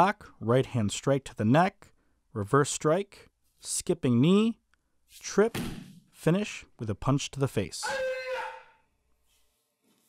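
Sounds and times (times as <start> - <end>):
man shouting a held note: 7.8 - 8.8.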